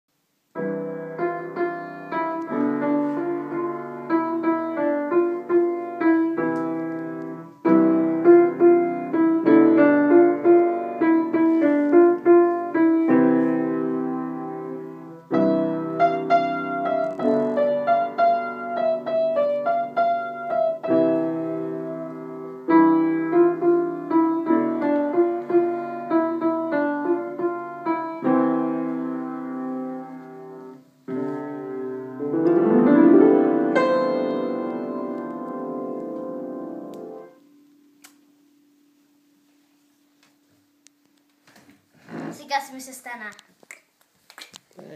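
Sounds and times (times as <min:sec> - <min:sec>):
upright piano playing: 0:00.5 - 0:37.6.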